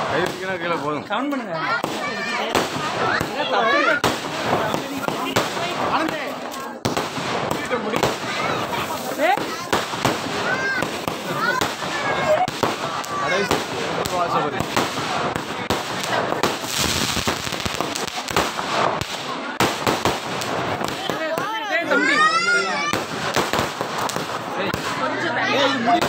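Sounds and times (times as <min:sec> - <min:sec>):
fireworks bursting: 0:00.0 - 0:26.0.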